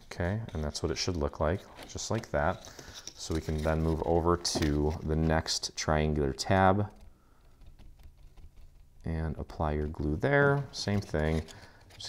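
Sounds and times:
small taps and rustles of cardstock: 6.5s - 12.0s.

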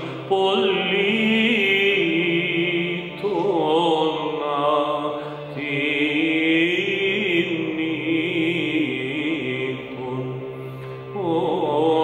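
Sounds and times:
man chanting a hymn: 0.0s - 10.5s, 11.2s - 12.0s.

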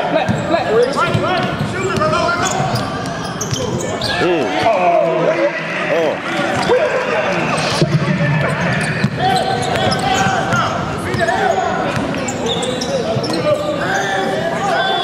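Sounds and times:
sneakers squeaking: 0.0s - 4.8s, 6.2s - 15.0s
players and spectators voices: 0.0s - 15.0s.

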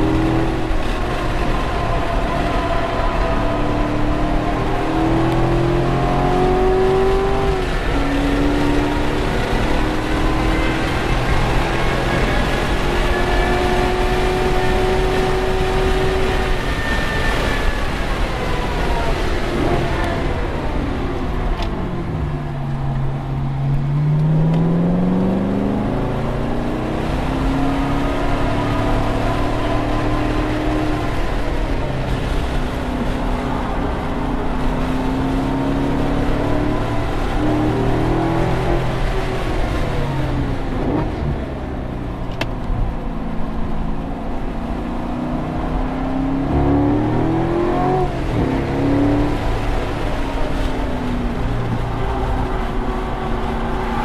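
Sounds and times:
car engine revving: 0.0s - 54.0s
road and wind noise: 0.0s - 54.0s.

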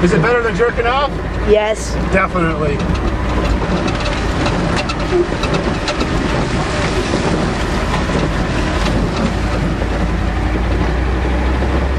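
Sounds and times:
road noise: 0.0s - 11.9s
truck engine rumble: 0.0s - 11.9s
loose rattling: 1.1s - 11.9s.

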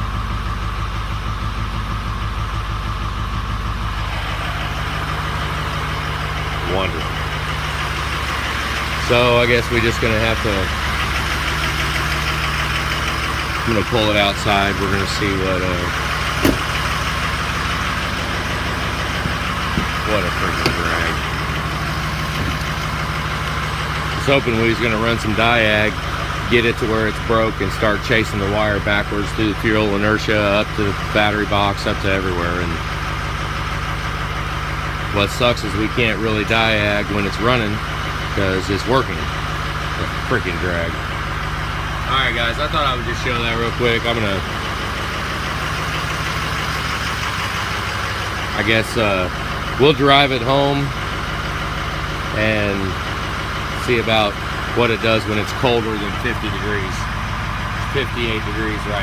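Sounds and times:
diesel engine idling: 0.0s - 59.0s.

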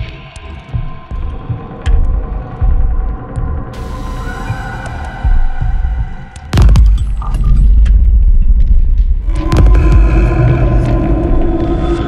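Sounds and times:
sustained drone: 0.0s - 6.7s, 9.2s - 12.0s
throbbing bass pulses: 5.2s - 12.0s.

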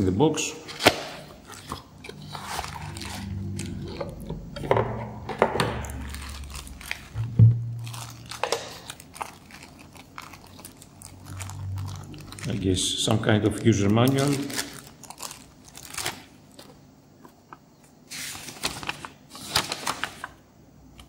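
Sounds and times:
plastic bag crinkling: 0.8s - 4.3s, 5.6s - 16.8s, 18.1s - 20.4s.

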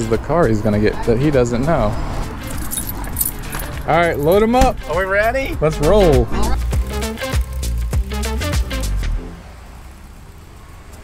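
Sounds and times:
metallic jingling: 2.4s - 4.6s.

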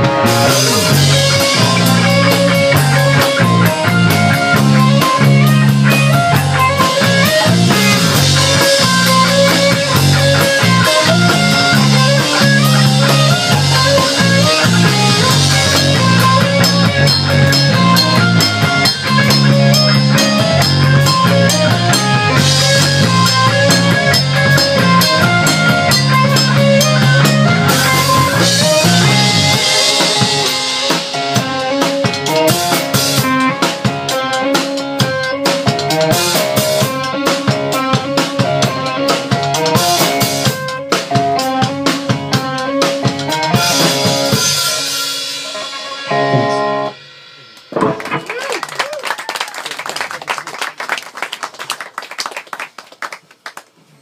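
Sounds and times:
rock band playing: 0.0s - 50.9s
people clapping: 47.8s - 53.9s.

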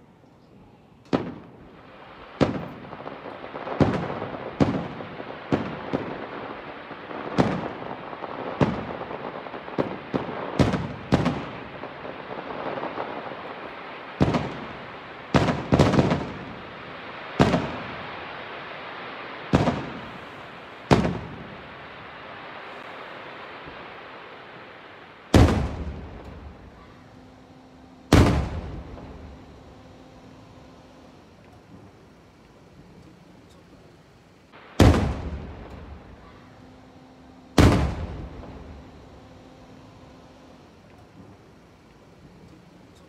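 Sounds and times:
firework crackling hiss: 0.7s - 43.0s
firework shells booming: 1.1s - 32.2s, 34.6s - 41.6s.

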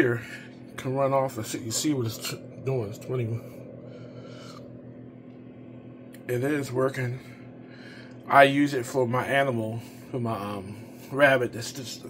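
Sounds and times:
fan heater humming: 0.0s - 12.0s.

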